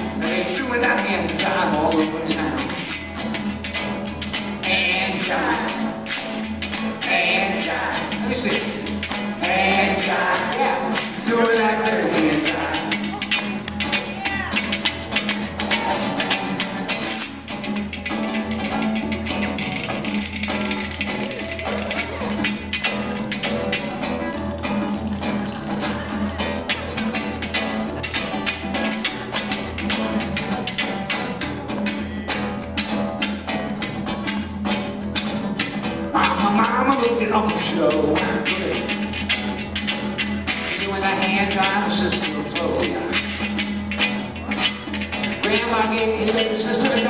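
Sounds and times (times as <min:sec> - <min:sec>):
acoustic guitar strumming: 0:00.0 - 0:47.0.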